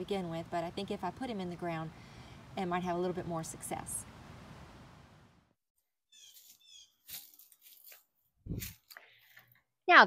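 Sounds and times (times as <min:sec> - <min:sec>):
faint bird chirps: 0:06.1 - 0:07.0.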